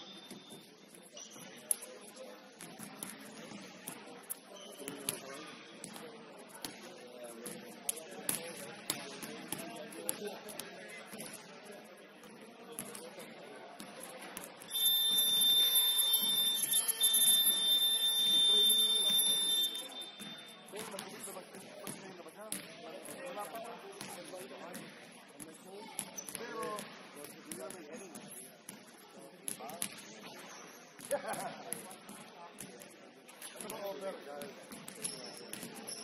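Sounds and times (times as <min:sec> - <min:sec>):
voices echoing in hall: 0:00.0 - 0:36.0
scoreboard buzzer: 0:14.7 - 0:20.5.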